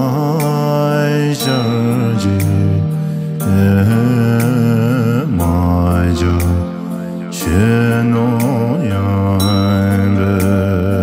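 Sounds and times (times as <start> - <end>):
man singing a chant-like prayer song: 0.0 - 11.0.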